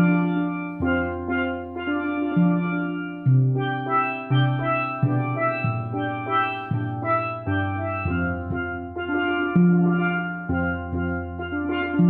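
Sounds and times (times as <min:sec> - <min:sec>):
low bass steelpan notes: 0:00.0 - 0:12.0
steelpan notes ringing: 0:00.0 - 0:12.0.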